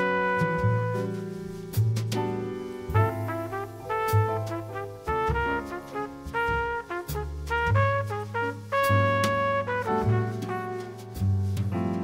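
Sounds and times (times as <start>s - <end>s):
brass horn playing held notes: 0.0s - 1.2s, 2.9s - 11.1s
bass and drums: 0.0s - 12.0s.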